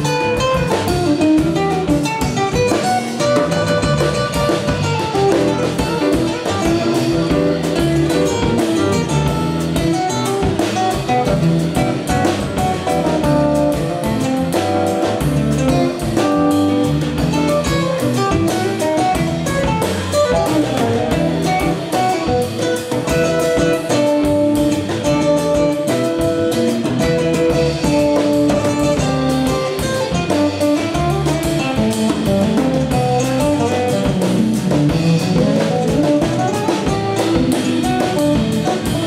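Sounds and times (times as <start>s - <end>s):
bass: 0.0s - 39.0s
drum kit cymbals: 0.0s - 39.0s
guitar melody: 0.0s - 39.0s.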